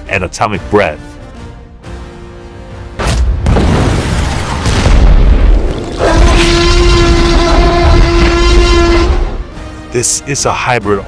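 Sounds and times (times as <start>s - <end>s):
deep rumbling boom: 3.4s - 8.7s.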